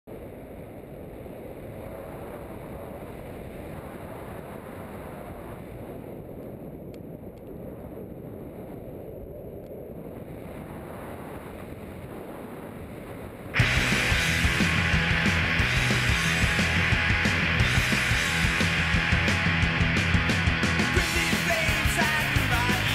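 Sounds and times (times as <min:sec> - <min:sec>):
wind rushing over microphone: 0:00.1 - 0:22.9
loud rock music: 0:13.6 - 0:22.9.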